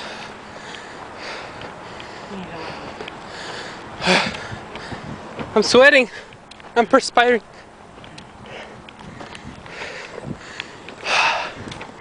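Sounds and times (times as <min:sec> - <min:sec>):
heavy breathing: 0:00.0 - 0:05.4, 0:06.0 - 0:06.4, 0:07.5 - 0:12.0.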